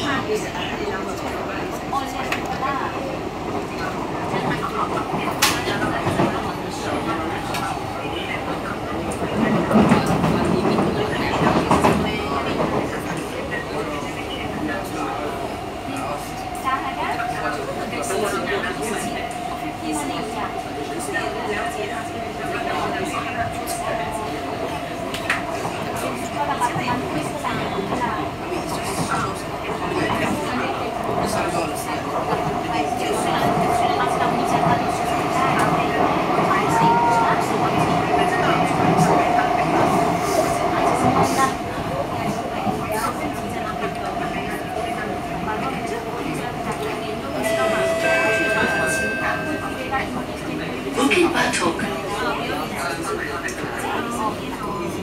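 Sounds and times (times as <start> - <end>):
train wheels rumbling on rail: 0.0 - 55.0
train whine: 46.3 - 52.6
brief high-pitched tones: 47.4 - 49.9.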